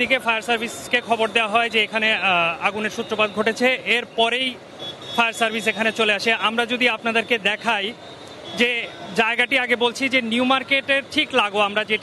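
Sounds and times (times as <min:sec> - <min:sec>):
man talking: 0:00.0 - 0:04.6, 0:05.2 - 0:12.0.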